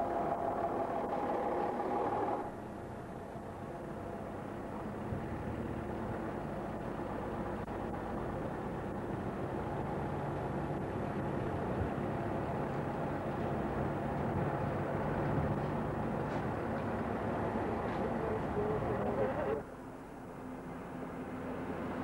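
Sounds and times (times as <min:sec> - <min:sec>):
diesel lorry engine running: 0:00.0 - 0:22.0.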